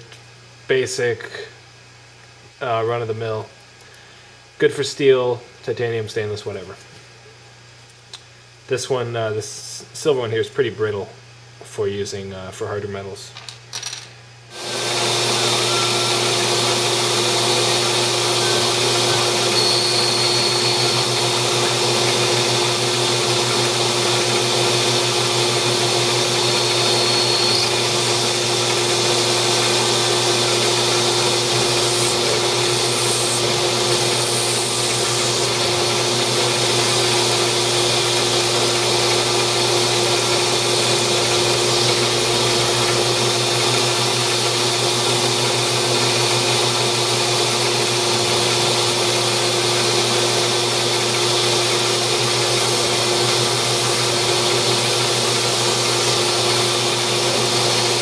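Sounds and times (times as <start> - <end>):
metal lathe humming: 14.5 - 58.0
hiss: 31.5 - 35.6.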